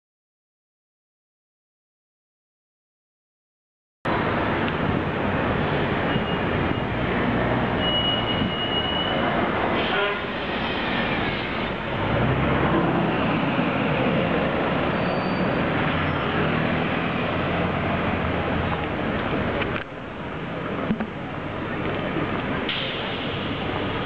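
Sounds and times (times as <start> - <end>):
busy city traffic roar: 4.1 - 24.0.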